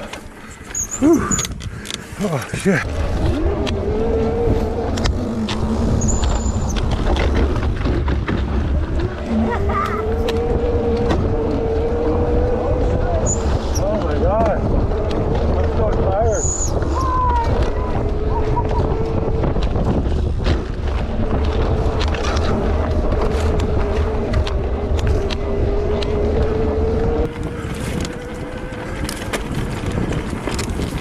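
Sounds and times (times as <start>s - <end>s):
wind on microphone: 0.0s - 31.0s
vehicle engine running: 2.7s - 31.0s.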